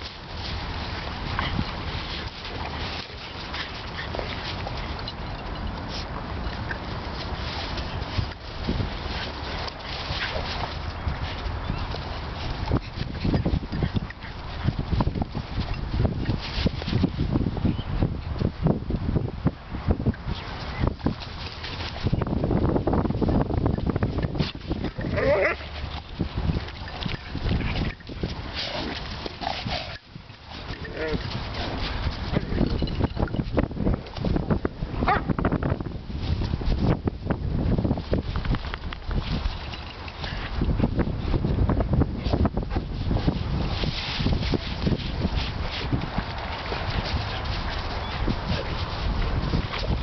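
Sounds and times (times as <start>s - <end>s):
paws scuffling on dirt: 0.0s - 19.1s, 20.1s - 50.0s
wind rumble on microphone: 0.0s - 50.0s.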